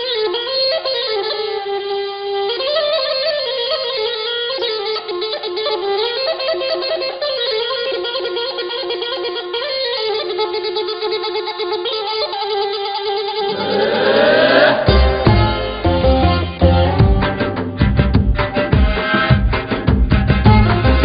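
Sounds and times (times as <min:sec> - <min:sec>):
reedy wind instrument melody: 0:00.0 - 0:19.0, 0:20.5 - 0:21.0.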